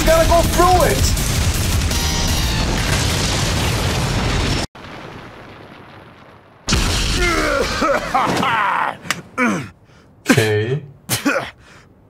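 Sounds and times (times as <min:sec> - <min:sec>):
heavy rumbling crash: 0:00.0 - 0:08.5.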